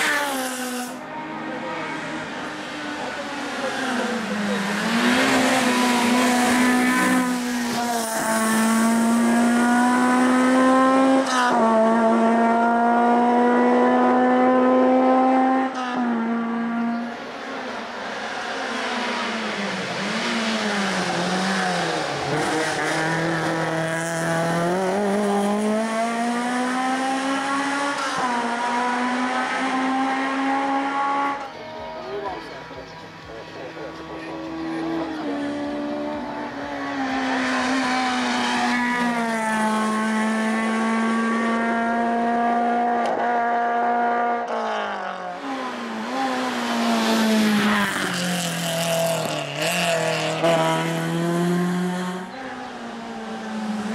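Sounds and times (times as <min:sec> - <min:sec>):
race car engine at full throttle: 0:00.0 - 0:53.9.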